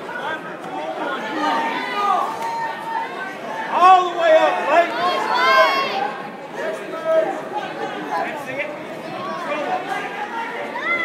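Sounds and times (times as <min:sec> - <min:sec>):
loud shout: 0:00.0 - 0:06.2, 0:09.1 - 0:11.0
spectators chattering: 0:00.0 - 0:11.0.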